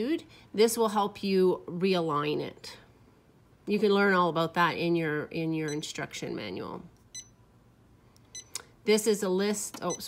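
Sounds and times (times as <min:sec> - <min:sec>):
short high beeps: 0:07.1 - 0:07.4.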